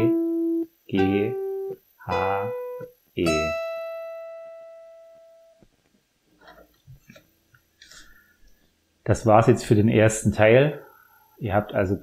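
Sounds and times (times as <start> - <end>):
acoustic guitar note ringing: 0.0 - 5.6.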